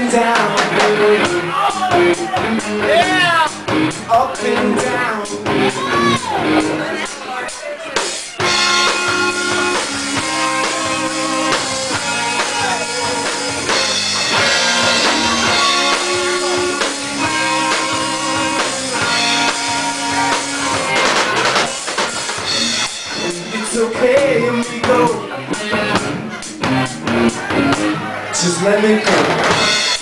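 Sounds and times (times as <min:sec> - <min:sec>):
drum kit: 0:00.0 - 0:30.0
electric guitars: 0:00.0 - 0:30.0
live rock band playing: 0:00.0 - 0:30.0.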